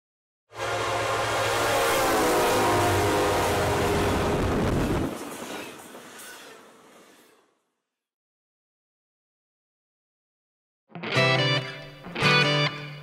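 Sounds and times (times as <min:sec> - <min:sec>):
loud horn-like drone: 0:00.5 - 0:05.0.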